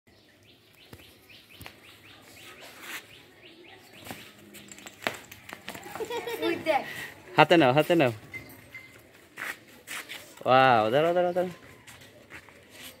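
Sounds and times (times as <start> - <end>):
small bird chirping: 0.1 - 4.9.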